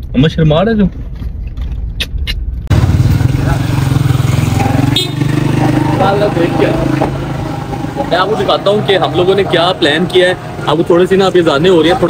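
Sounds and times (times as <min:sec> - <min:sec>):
traffic engine hum and road noise: 0:00.0 - 0:12.0.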